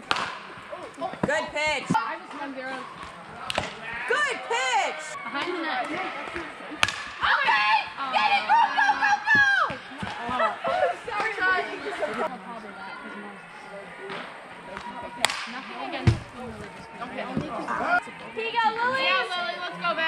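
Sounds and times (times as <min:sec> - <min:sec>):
people shouting and calling out: 0:00.6 - 0:20.0.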